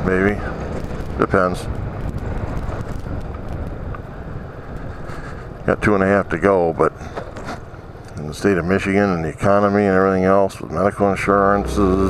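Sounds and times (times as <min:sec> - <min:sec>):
wind and road noise: 0:00.0 - 0:12.0
scooter engine drone: 0:10.6 - 0:12.0.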